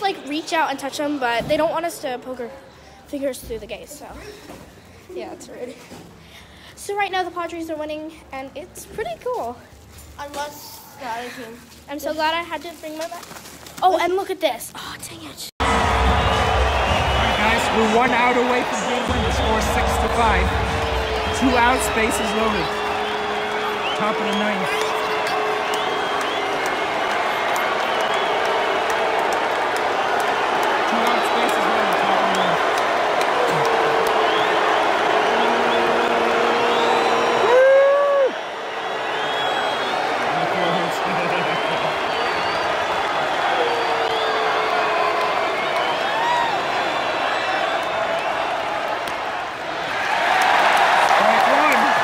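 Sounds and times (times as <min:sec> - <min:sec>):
crowd cheering: 0:00.0 - 0:01.9, 0:15.6 - 0:52.0
crowd hubbub: 0:15.6 - 0:44.2
loud rising yell: 0:15.6 - 0:48.5
crowd shouts: 0:15.6 - 0:52.0.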